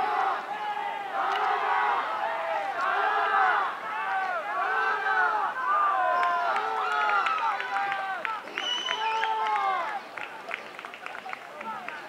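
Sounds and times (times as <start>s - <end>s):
high voices shouting and cheering: 0.0s - 12.0s.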